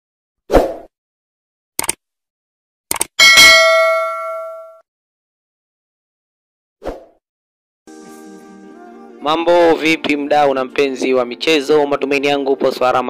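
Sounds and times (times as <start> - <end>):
bright bell ding: 3.2 - 4.8.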